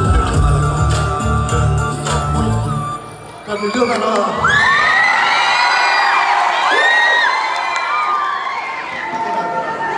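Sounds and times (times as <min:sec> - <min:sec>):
crowd cheering: 0:03.1 - 0:09.9.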